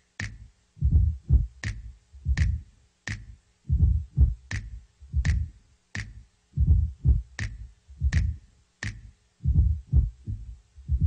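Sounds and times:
deep kick drum thumps: 0.8 - 2.6, 3.7 - 5.5, 6.6 - 8.4, 9.4 - 11.0
sharp snare hits: 4.5 - 4.7, 7.4 - 7.6, 8.2 - 9.1.

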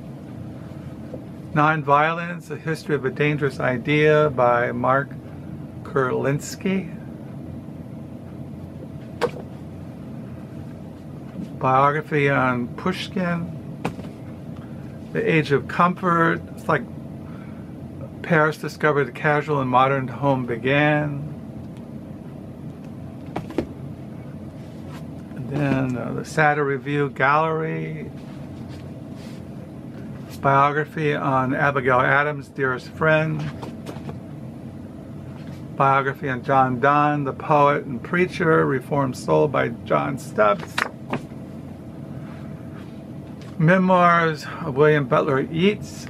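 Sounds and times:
low room hum: 0.0 - 46.0
book knocking on surface: 9.2 - 9.5, 13.8 - 14.2, 23.3 - 23.7.

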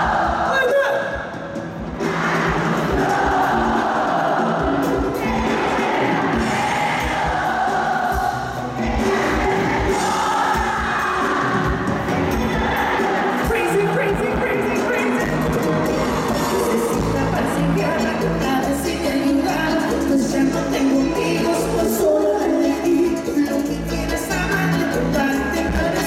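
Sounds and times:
crowd voices: 0.0 - 26.0
live band playing: 0.0 - 26.0
person singing: 2.9 - 26.0.

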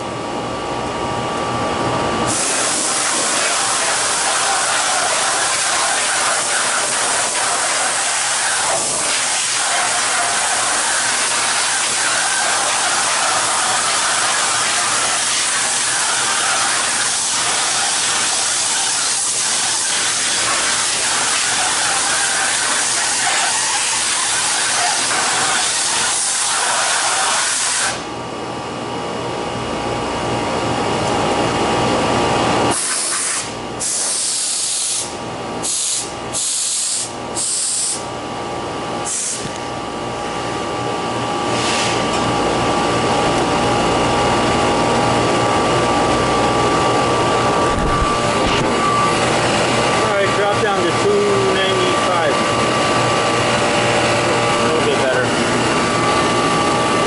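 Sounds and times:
condensing unit hum: 0.0 - 57.0
refrigeration unit hissing: 1.0 - 29.6, 30.5 - 57.0.

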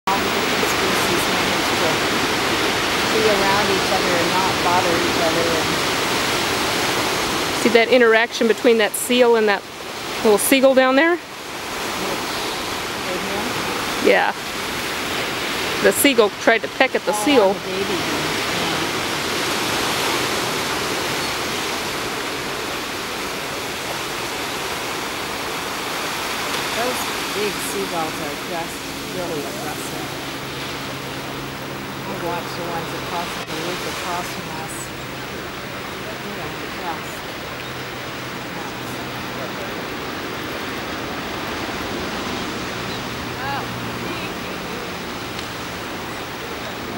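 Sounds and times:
waves breaking on beach: 0.1 - 46.9.

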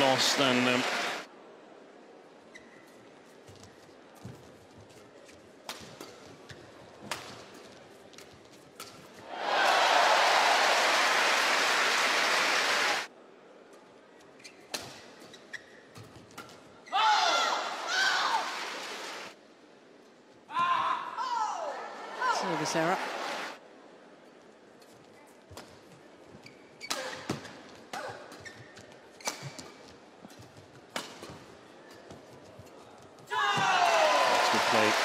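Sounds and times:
crowd cheering with squeals: 9.3 - 13.1, 33.4 - 35.0
crowd applause: 9.4 - 13.1, 33.8 - 35.0.

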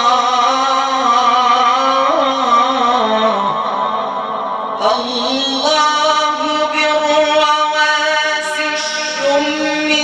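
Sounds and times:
man chanting a long sung note: 0.0 - 10.0.

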